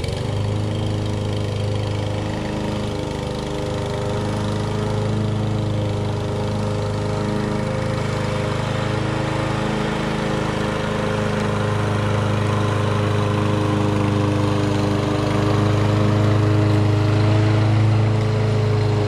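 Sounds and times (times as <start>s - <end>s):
lawn mower engine running: 0.0s - 19.0s.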